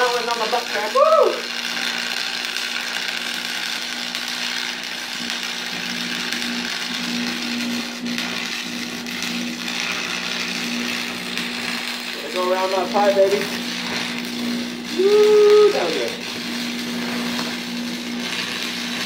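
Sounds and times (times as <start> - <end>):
arc welding sizzle: 0.0 - 19.0.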